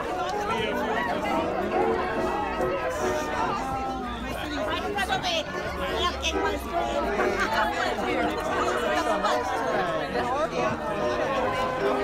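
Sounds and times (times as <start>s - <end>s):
group chatter: 0.0s - 12.0s.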